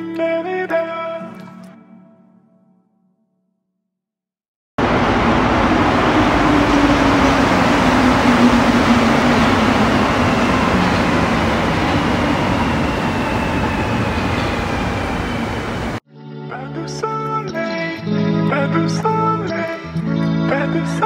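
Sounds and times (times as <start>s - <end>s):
metro train rumbling: 4.8s - 16.0s
train motor whine: 4.8s - 16.0s.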